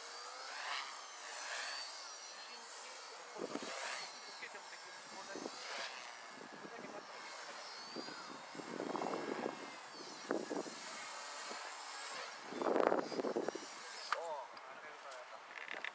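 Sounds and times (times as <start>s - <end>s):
rc helicopter motor whine: 0.0s - 15.9s.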